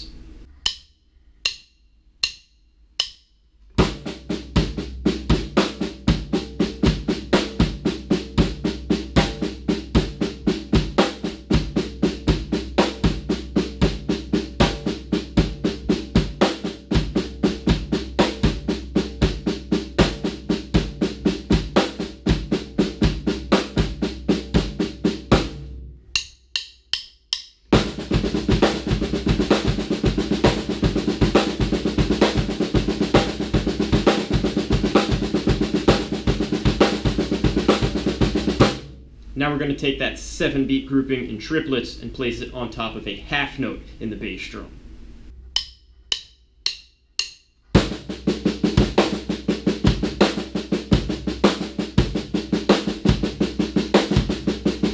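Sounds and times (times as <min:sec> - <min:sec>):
bass drum beats: 0:03.8 - 0:25.8, 0:27.7 - 0:39.8, 0:47.8 - 0:54.9
snare drum triplets: 0:27.8 - 0:39.0, 0:47.8 - 0:54.9.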